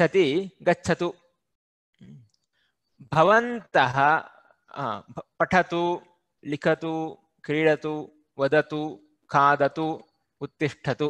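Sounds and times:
man's voice: 0:03.0 - 0:11.0.

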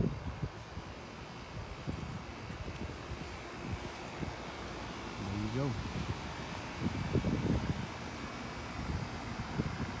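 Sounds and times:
steady background hiss: 0:00.0 - 0:10.0
wind buffeting microphone: 0:00.0 - 0:10.0.

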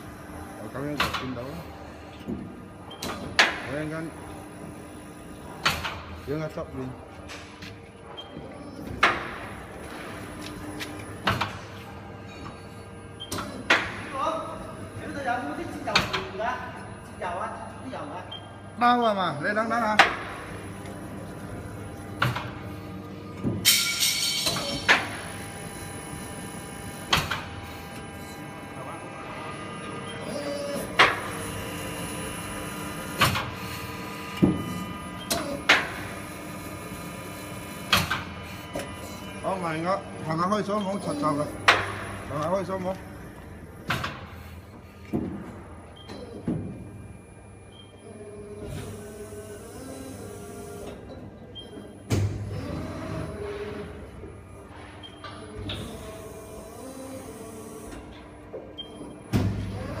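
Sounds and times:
injection molding machine humming: 0:00.0 - 1:00.0.

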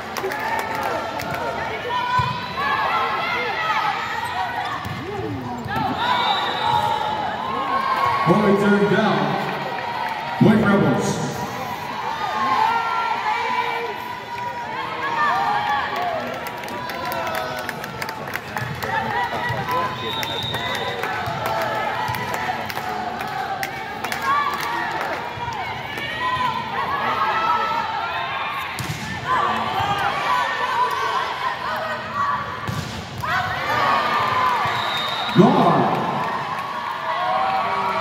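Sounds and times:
crowd chatter and cheering: 0:00.0 - 0:38.0
volleyball hits: 0:28.7 - 0:30.2, 0:32.6 - 0:34.8.

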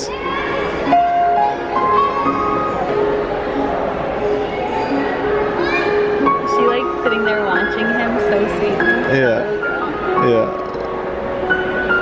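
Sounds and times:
grand piano melody: 0:00.9 - 0:12.0.

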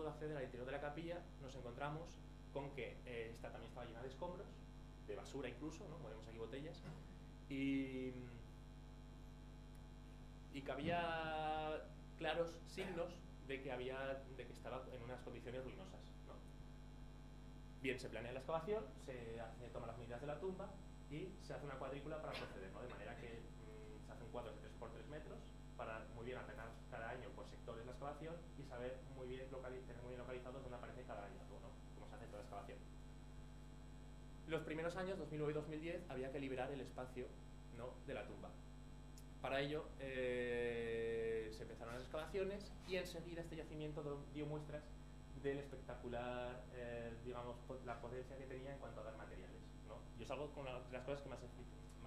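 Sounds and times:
electrical mains hum: 0:00.0 - 0:52.0.

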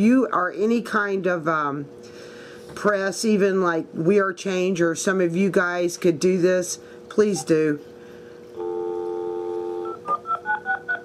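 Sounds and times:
telephone dial tone: 0:08.6 - 0:11.0.

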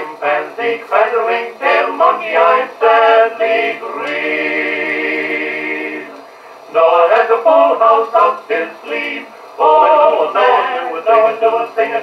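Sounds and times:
vocal quartet singing in harmony: 0:00.0 - 0:12.0.

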